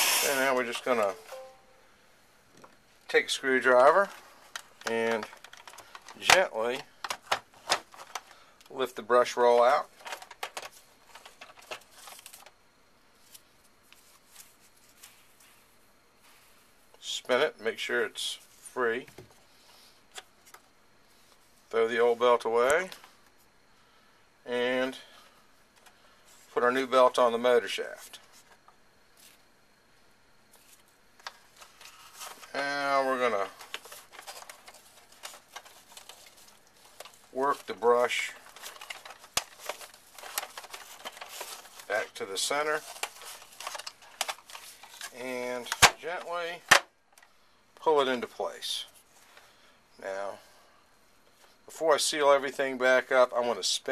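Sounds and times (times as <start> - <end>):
wordless voice sound: 0.1 - 1.8
plastic parts clicking and scraping: 4.1 - 8.3, 10.0 - 12.5, 33.3 - 37.7, 38.3 - 41.9, 42.8 - 46.0.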